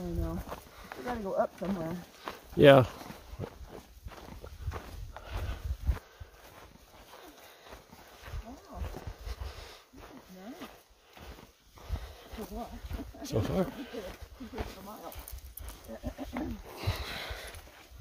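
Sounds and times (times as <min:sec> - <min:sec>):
footsteps in dry grass: 0:00.0 - 0:18.0.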